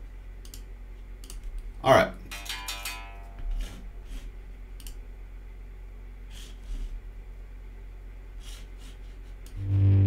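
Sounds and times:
computer mouse clicks: 0.4 - 1.6, 4.8 - 5.0
electric guitar chord: 9.6 - 10.0.

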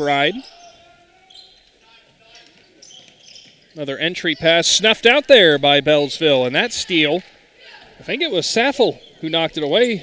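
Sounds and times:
sneaker squeaks: 0.4 - 4.6.

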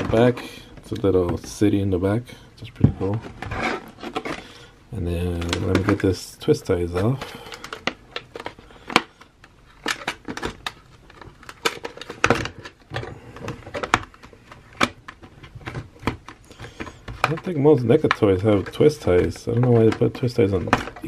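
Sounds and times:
plastic packaging crinkling: 3.0 - 21.0.

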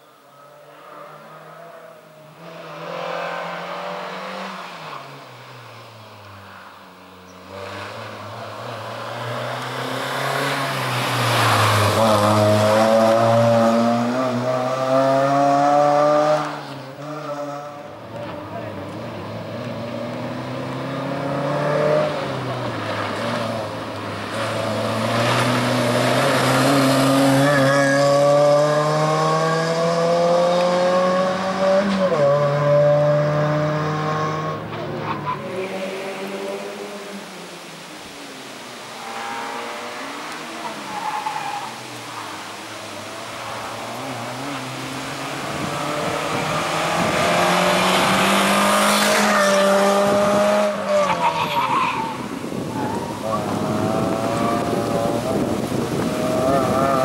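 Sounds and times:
car engine revving hard: 8.8 - 16.6, 24.4 - 34.6, 43.8 - 51.0, 52.5 - 57.0.

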